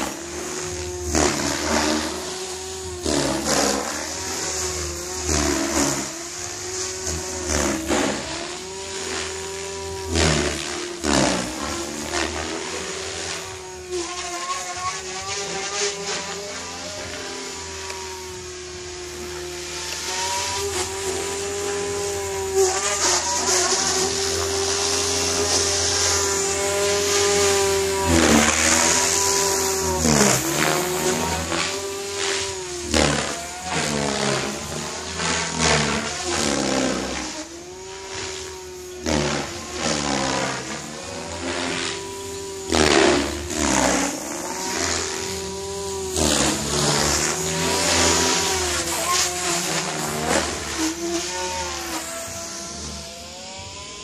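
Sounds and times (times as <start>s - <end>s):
rc helicopter rotor whine: 0.0s - 54.0s.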